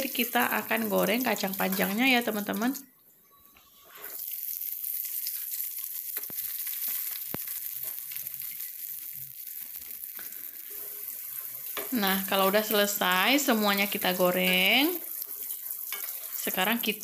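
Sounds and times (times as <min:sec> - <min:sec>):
beans sizzling in hot oil: 0:00.0 - 0:02.8, 0:03.7 - 0:17.0.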